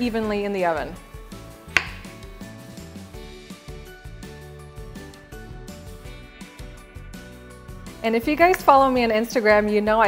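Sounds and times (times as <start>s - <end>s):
background music: 0.0s - 10.0s
knife chopping on cutting board: 1.7s - 2.2s.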